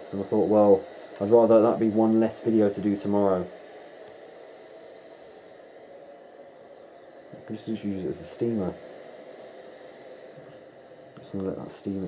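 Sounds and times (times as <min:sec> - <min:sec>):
steam iron hissing: 0:00.0 - 0:12.0.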